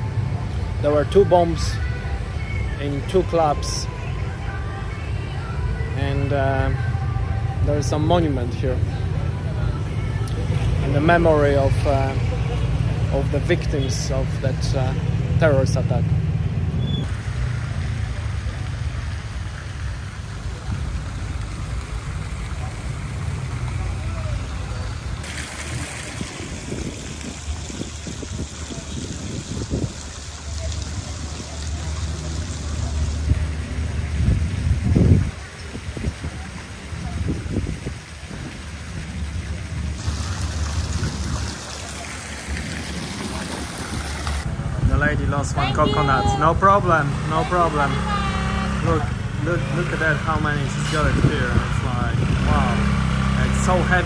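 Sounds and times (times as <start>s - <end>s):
fountain water splashing: 0.0s - 16.0s, 17.0s - 54.0s
low traffic rumble: 0.0s - 54.0s.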